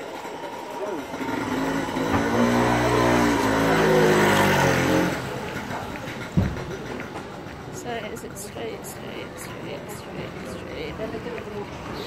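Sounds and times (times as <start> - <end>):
motorbike engine passing by: 0.8 - 7.0
short thump: 6.4 - 6.7.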